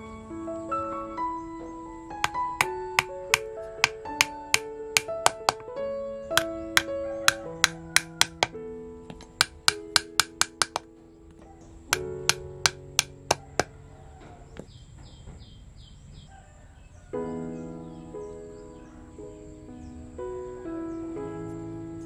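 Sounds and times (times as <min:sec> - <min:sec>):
background music with held notes: 0:00.0 - 0:14.2, 0:17.2 - 0:22.0
small hammer tapping nails: 0:02.2 - 0:05.7, 0:06.4 - 0:08.5, 0:09.1 - 0:10.9, 0:12.0 - 0:13.7.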